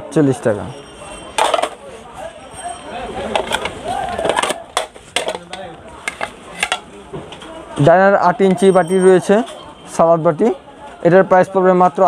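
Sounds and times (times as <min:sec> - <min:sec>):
plastic plates clattering: 0:01.4 - 0:01.9, 0:03.2 - 0:07.4.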